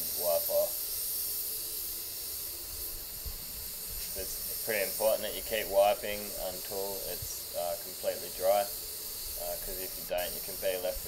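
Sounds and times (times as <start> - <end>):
high-pitched air hiss: 0.0 - 11.0.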